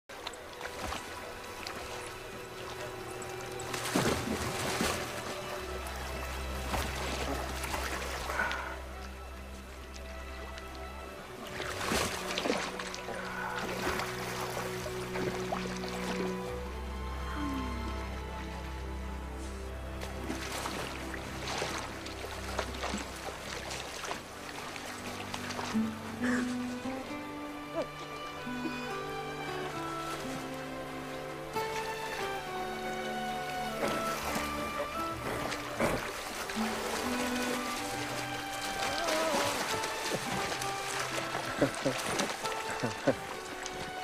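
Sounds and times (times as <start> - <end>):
background music with held tones: 0.1 - 44.0
horse splashing through water: 0.2 - 8.8, 11.4 - 16.4, 20.0 - 26.9, 33.2 - 44.0.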